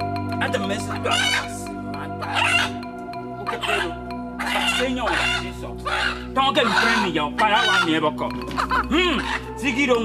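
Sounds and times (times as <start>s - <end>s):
background music: 0.0s - 10.0s
chicken squawking: 0.9s - 2.8s, 3.4s - 9.5s.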